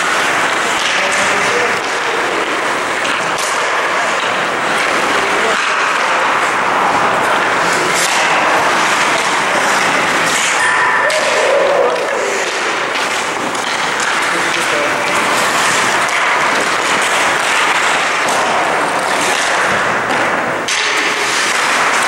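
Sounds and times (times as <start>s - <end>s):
skates scraping on ice: 0.0s - 22.0s.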